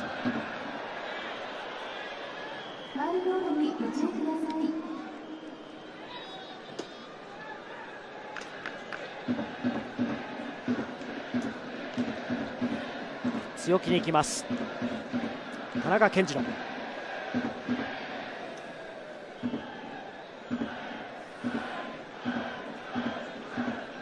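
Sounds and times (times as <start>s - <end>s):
rhythmic cheering beat: 0.0s - 2.6s, 8.4s - 24.0s
stadium crowd ambience: 0.0s - 24.0s.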